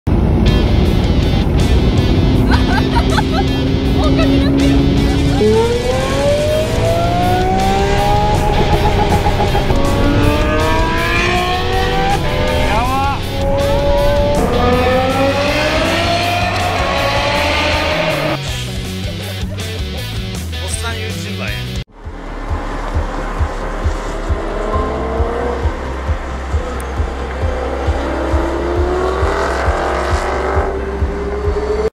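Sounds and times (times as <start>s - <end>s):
sports car engine accelerating: 0.1s - 20.5s, 21.9s - 31.9s.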